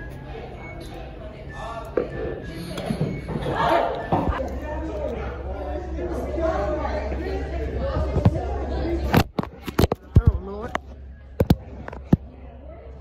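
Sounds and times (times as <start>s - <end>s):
chatter of voices: 0.0s - 13.0s.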